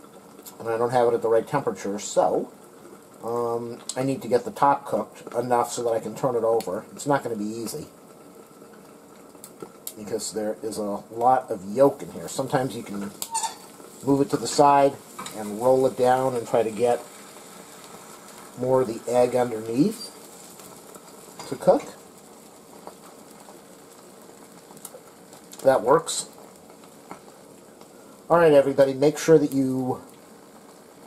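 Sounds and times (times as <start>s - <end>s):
food sizzling in frying pan: 0.0s - 31.0s
small crackles: 0.0s - 31.0s.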